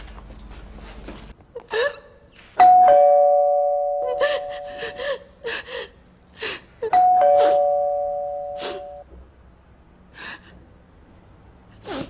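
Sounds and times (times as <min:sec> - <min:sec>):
woman sobbing: 0:01.6 - 0:02.2, 0:03.8 - 0:07.8
two-tone doorbell chime: 0:02.6 - 0:05.0, 0:06.9 - 0:09.0.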